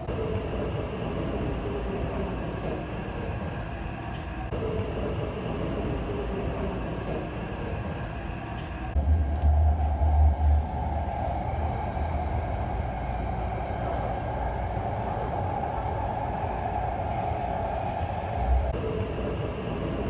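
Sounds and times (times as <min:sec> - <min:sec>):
train car hum and rumble: 0:00.0 - 0:20.0.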